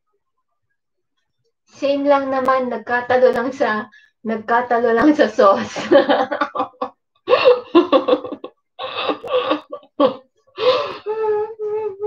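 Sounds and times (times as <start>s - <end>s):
woman laughing: 5.5s - 12.0s.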